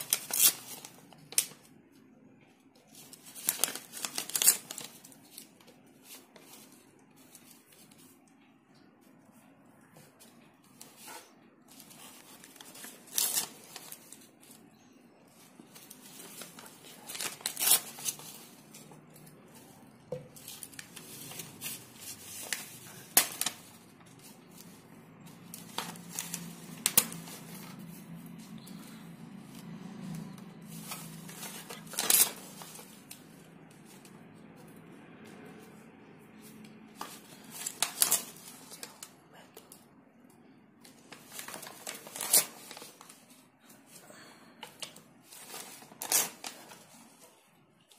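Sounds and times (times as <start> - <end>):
paper rustling and crinkling: 0.0 - 1.7, 2.7 - 14.6, 15.3 - 35.8, 36.4 - 39.8, 40.9 - 44.0, 44.6 - 47.9.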